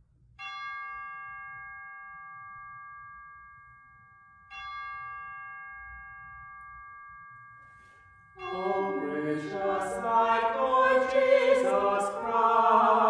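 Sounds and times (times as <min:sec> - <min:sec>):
bell ringing: 0:00.4 - 0:12.5.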